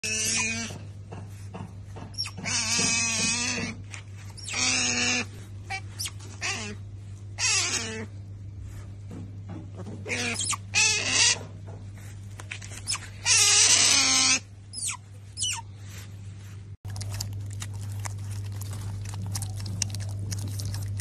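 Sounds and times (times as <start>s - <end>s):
otter squealing calls: 0.0s - 0.8s, 2.2s - 6.8s, 7.4s - 8.1s, 10.0s - 11.5s, 12.8s - 15.7s
steady low hum: 0.0s - 21.0s.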